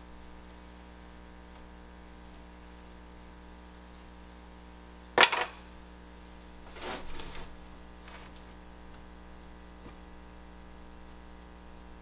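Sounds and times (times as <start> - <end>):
soft scraping rustle: 6.6 - 8.6.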